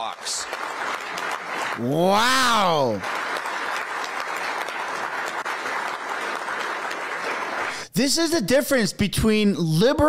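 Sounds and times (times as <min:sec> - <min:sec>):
audience applause: 0:00.0 - 0:07.9.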